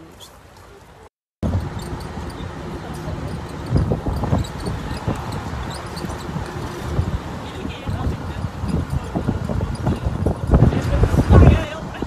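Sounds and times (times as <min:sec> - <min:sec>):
city background noise: 0:00.0 - 0:12.0
wind buffeting microphone: 0:01.4 - 0:12.0.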